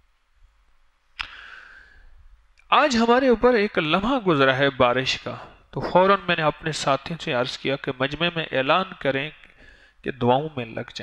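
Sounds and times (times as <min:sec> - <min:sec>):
sharp mouth click: 0:01.2 - 0:01.4
short breath drawn in: 0:01.2 - 0:02.3, 0:09.5 - 0:10.0.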